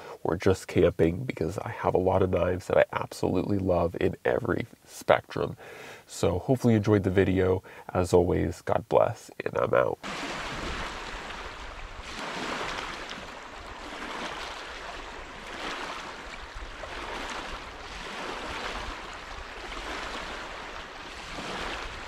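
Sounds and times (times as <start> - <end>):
waves washing onto pebble shore: 10.0 - 22.0.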